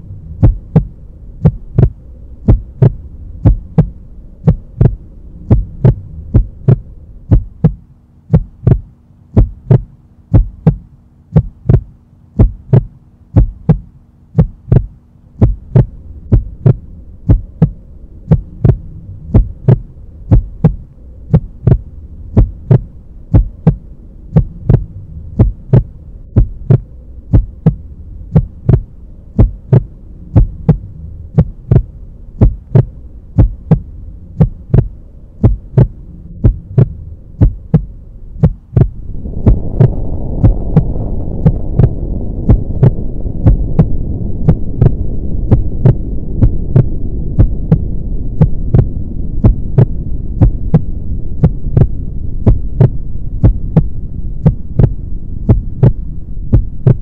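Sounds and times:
deep rumble: 0:00.0 - 0:57.0
heartbeat thumps: 0:00.0 - 0:57.0
low steady drone: 0:00.0 - 0:57.0.

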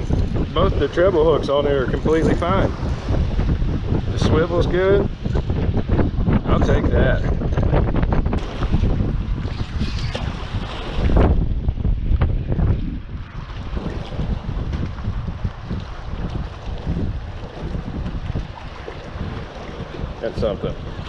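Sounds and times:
wind buffeting microphone: 0:00.0 - 0:21.0
water lapping: 0:08.3 - 0:11.9, 0:12.6 - 0:21.0.

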